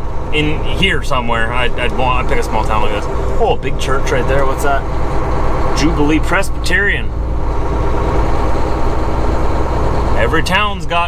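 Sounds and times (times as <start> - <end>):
truck diesel engine drone: 0.0 - 11.0.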